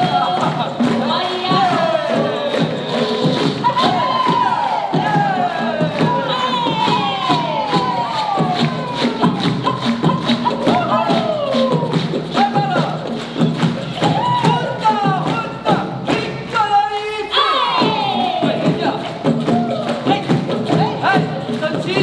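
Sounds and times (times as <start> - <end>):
hand drums: 0.0 - 22.0
children crowd noise: 17.0 - 18.9.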